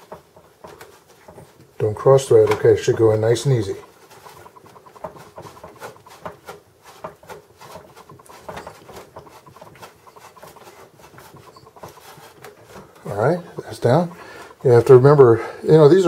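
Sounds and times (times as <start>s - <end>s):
faint irregular clicks and scraping: 0.0s - 16.0s.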